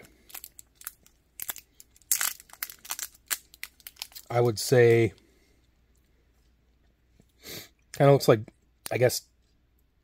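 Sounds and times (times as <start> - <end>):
foil wrapper crinkling and tearing: 0.0 - 4.5.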